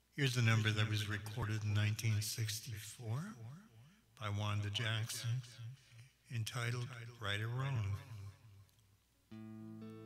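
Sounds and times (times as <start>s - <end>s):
electric guitar chord: 9.3s - 10.0s.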